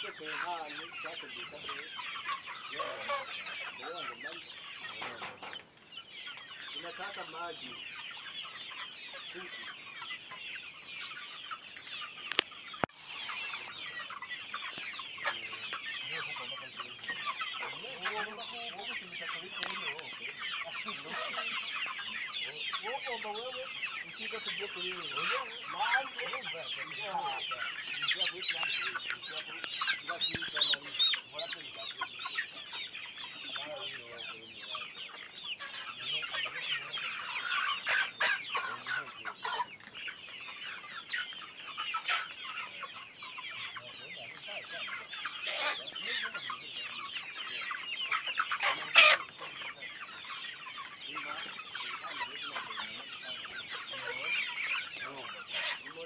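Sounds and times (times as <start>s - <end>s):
flock of chickens clucking: 0.0s - 56.0s.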